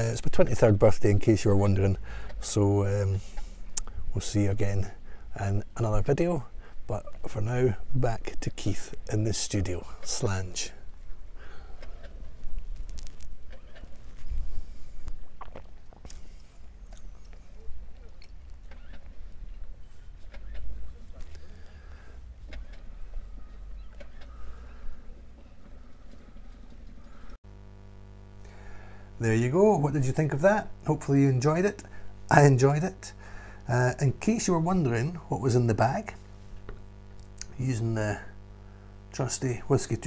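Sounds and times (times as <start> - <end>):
faint steady hum: 0.0 - 40.0.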